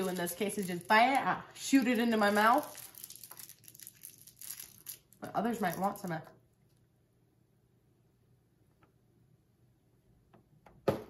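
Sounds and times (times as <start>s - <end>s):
plastic wrapper crinkling: 0.0s - 6.2s.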